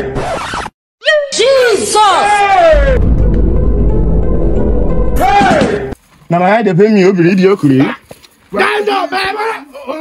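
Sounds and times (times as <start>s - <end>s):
man shouting wordless cries: 7.7s - 10.0s.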